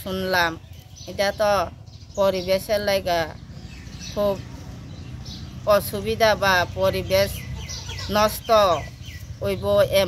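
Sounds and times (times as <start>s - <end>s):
chicken calling: 7.3s - 9.3s.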